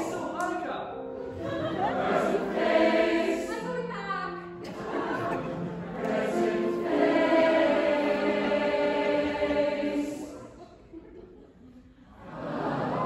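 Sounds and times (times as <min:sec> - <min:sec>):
choir singing a held chord: 0:01.3 - 0:10.6, 0:12.2 - 0:13.0.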